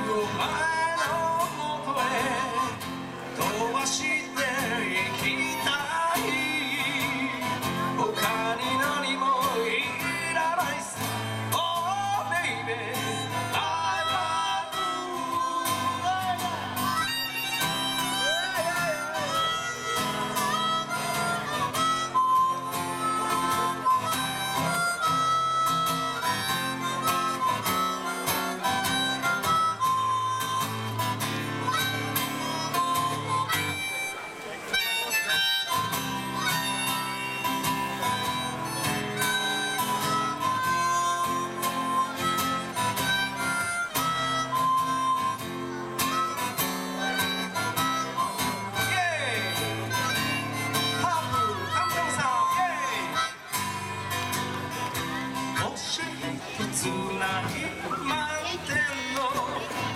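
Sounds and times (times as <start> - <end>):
harmonica solo: 0.0 - 59.9
strummed acoustic guitar: 0.0 - 59.9.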